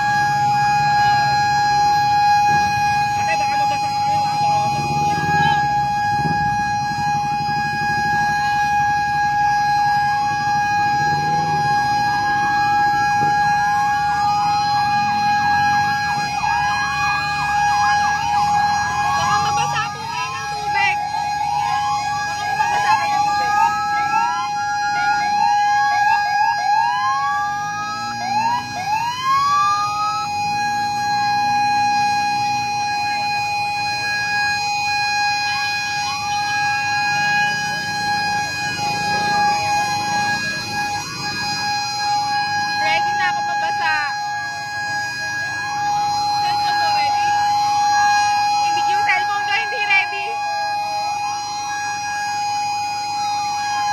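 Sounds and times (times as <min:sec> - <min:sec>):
sirens whooping: 0:00.0 - 0:53.9
steady high siren tone: 0:00.0 - 0:53.9.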